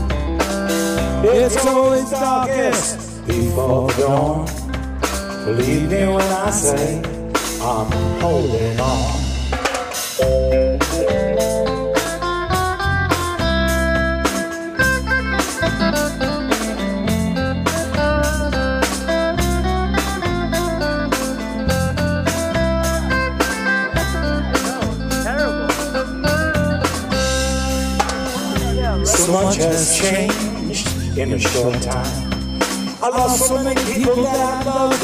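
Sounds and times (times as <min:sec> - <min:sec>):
bass guitar: 0:00.0 - 0:35.0
drum kit beat: 0:00.0 - 0:35.0
electric guitar melody: 0:00.0 - 0:35.0.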